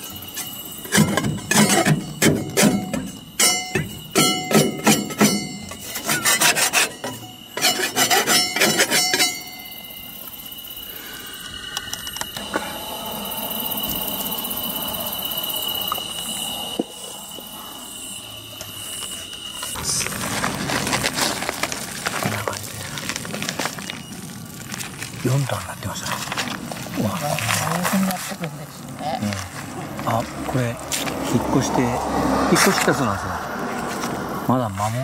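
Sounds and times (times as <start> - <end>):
scraping hornet nest off steel: 0.3 - 9.8
steady high-pitched tone: 6.8 - 20.8.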